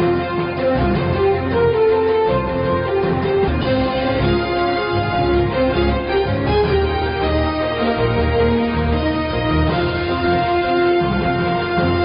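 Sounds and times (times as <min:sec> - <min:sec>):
news theme music: 0:00.0 - 0:12.0.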